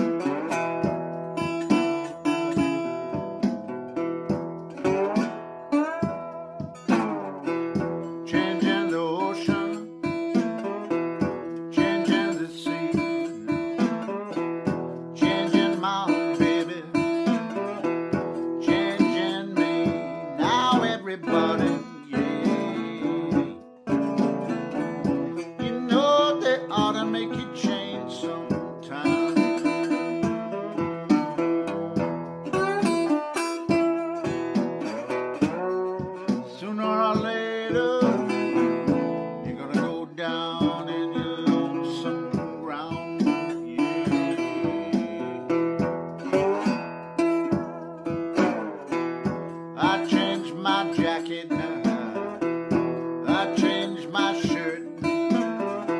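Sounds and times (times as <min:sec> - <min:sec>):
slide guitar fingerpicking: 0:00.0 - 0:55.9.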